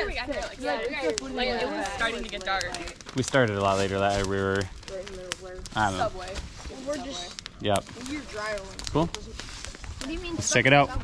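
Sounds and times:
group of people chatting: 0.0s - 11.0s.

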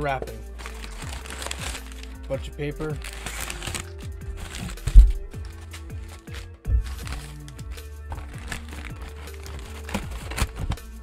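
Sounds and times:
background music: 0.0s - 11.0s
packing paper crumpling: 0.5s - 11.0s
heavy thumps: 4.3s - 5.5s, 6.6s - 7.2s.

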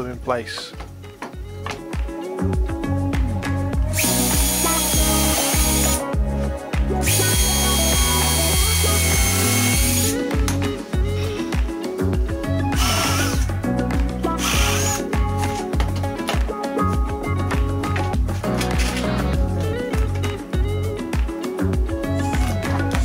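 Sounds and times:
background music: 0.0s - 23.0s
cordless drill drilling into wood: 4.0s - 6.0s, 7.0s - 10.3s, 12.8s - 13.5s, 14.4s - 15.1s.

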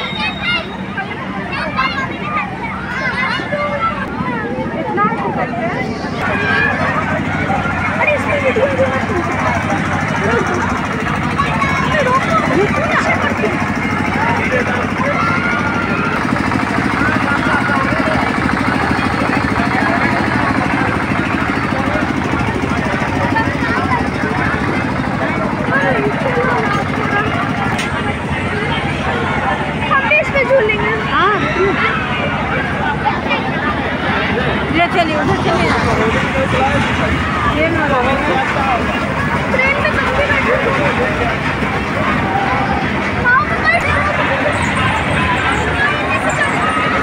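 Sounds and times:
crowd babble: 0.0s - 47.0s
steady low hum: 0.0s - 47.0s.

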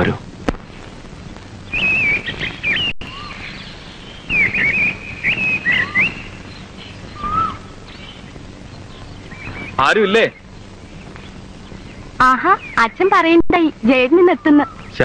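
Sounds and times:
lower single bird notes: 0.8s - 13.0s
bird warbling chirps: 1.7s - 13.3s, 14.2s - 15.0s.

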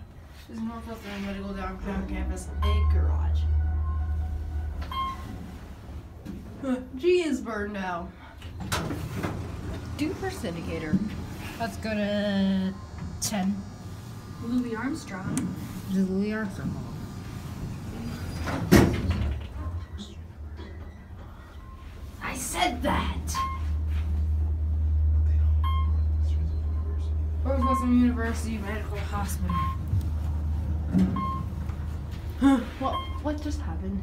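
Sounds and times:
low hum of elevator car: 0.0s - 34.0s
elevator doors sliding: 0.6s - 6.6s, 8.4s - 24.8s
electronic elevator beep: 2.5s - 5.5s, 12.5s - 13.8s, 23.3s - 23.8s, 25.6s - 28.2s, 29.4s - 29.8s, 31.2s - 31.6s, 32.8s - 33.3s.

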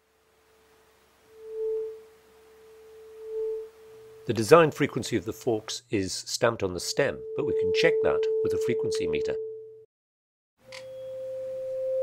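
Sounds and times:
tuning fork pure tone: 0.2s - 4.3s, 10.7s - 12.0s.

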